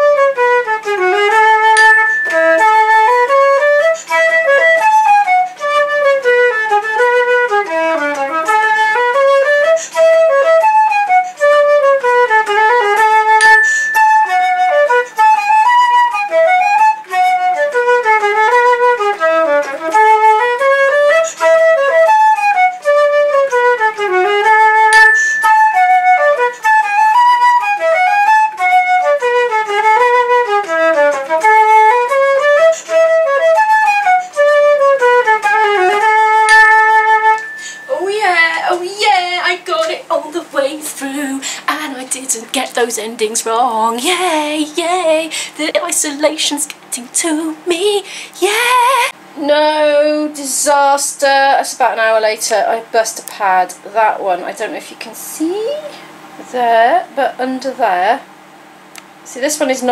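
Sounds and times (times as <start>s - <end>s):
flute playing a folk tune: 0.0s - 38.5s.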